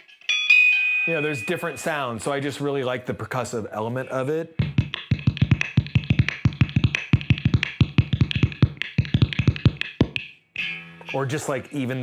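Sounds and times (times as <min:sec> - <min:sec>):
hand tapping guitar body: 0:04.6 - 0:10.3.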